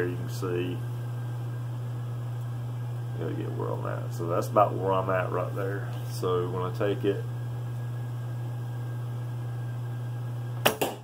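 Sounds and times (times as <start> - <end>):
low hum: 0.0 - 10.6
arrow striking target: 10.6 - 11.0.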